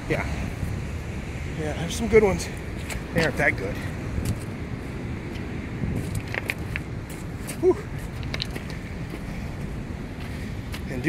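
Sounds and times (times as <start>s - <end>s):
ocean surf roaring: 0.0s - 11.0s.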